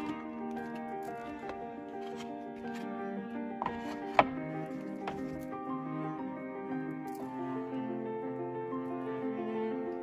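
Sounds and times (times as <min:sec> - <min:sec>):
instrumental background music: 0:00.0 - 0:10.0.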